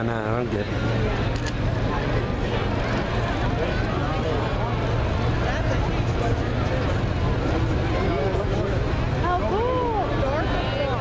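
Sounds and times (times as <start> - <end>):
crowd chattering: 0.0 - 11.0
low mechanical hum: 0.0 - 11.0.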